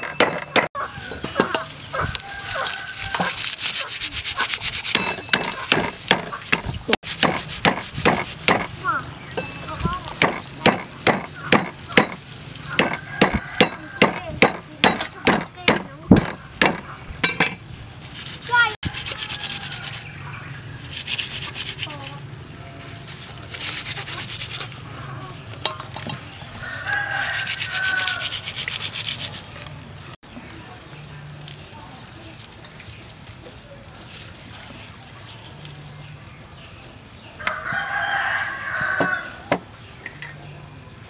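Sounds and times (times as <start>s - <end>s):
hands rubbing and rustling: 1.0s - 13.6s, 18.0s - 39.0s
cleaver chopping on wooden board: 4.9s - 8.7s, 10.2s - 12.2s, 12.8s - 16.9s.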